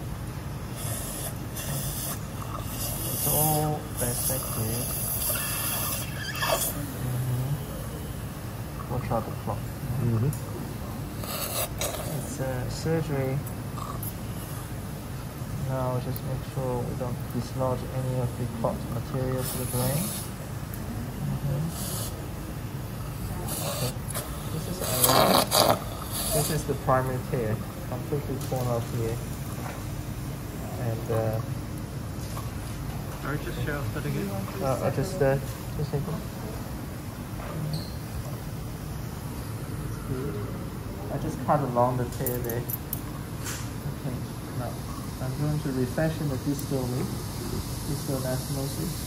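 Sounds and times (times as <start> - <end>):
low hum of equipment: 0.0 - 49.0
suction wand hissing: 0.7 - 7.3, 19.4 - 20.4, 21.7 - 22.2, 23.4 - 26.8.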